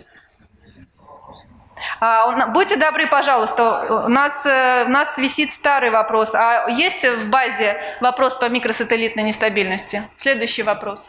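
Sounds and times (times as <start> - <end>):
faint room noise: 0.0 - 11.0
woman breathing in to speak: 7.8 - 8.0.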